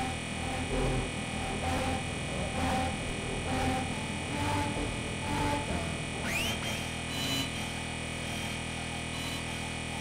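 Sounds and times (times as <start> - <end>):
synthesizer drone: 0.0 - 10.0.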